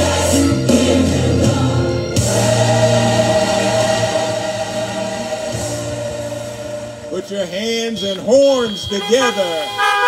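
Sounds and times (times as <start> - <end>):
gospel choir singing: 0.0 - 7.2.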